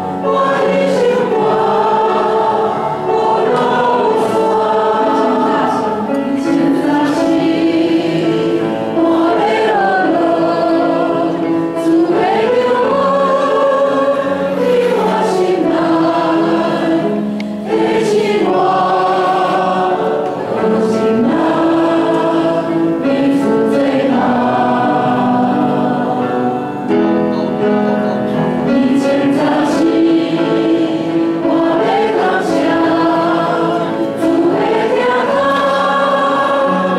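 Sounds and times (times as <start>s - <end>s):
group singing a hymn: 0.0s - 27.0s, 28.6s - 36.9s
piano accompaniment: 0.0s - 36.9s.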